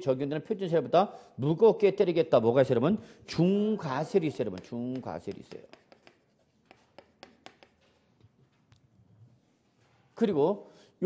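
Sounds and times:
chalk tapping and scratching: 4.3s - 8.3s.

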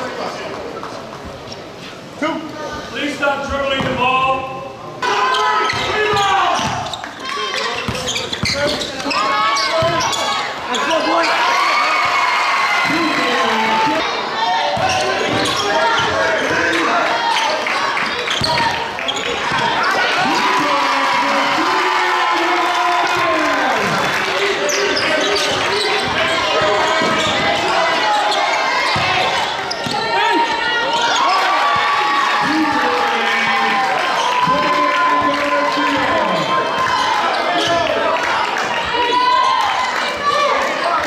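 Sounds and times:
voices of players and spectators: 0.0s - 41.0s.

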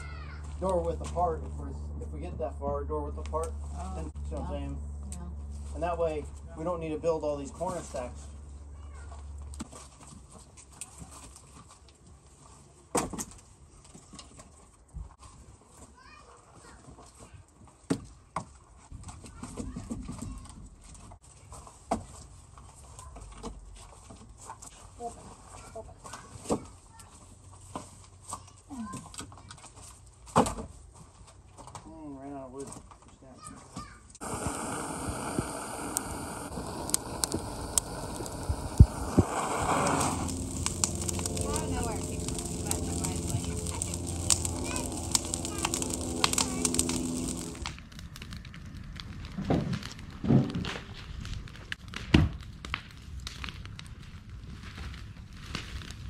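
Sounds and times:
brush pile burning and crackling: 0.0s - 15.8s, 34.2s - 56.0s.

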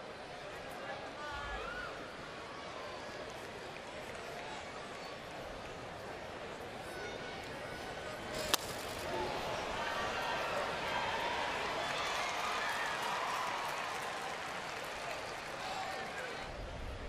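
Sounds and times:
crowd noise: 0.0s - 17.0s
wooden bat hitting ball: 8.4s - 9.1s.

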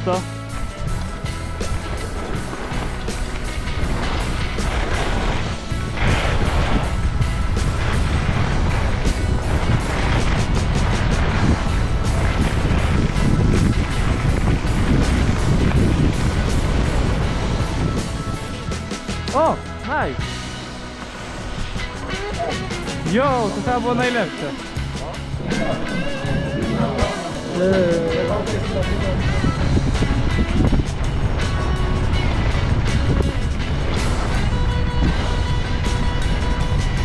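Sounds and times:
wind rushing over microphone: 0.5s - 23.9s, 24.6s - 37.0s
skis scraping over snow: 0.6s - 19.3s, 20.6s - 37.0s.

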